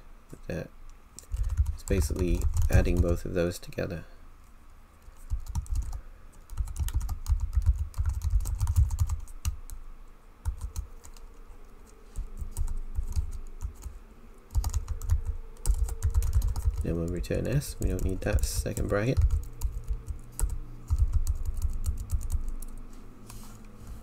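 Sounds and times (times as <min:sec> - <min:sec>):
typing on computer keyboard: 0:01.2 - 0:03.2, 0:05.1 - 0:09.7, 0:10.4 - 0:11.3, 0:12.2 - 0:13.9, 0:14.5 - 0:22.9.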